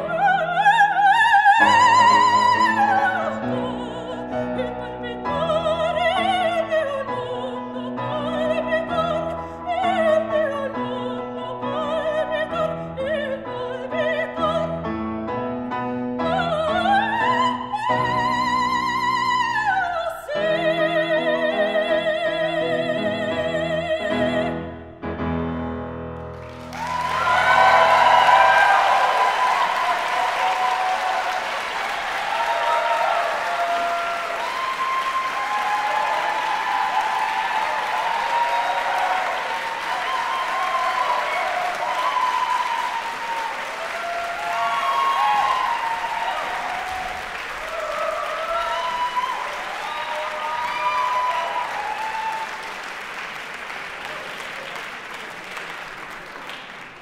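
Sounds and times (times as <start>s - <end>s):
audience applauding: 26.2s - 57.0s.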